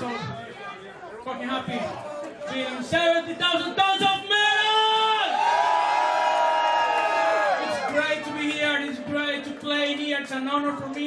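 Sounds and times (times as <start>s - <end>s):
crowd chatter: 0.0s - 4.7s, 7.2s - 11.0s
man talking into microphone: 0.0s - 5.3s, 7.6s - 11.0s.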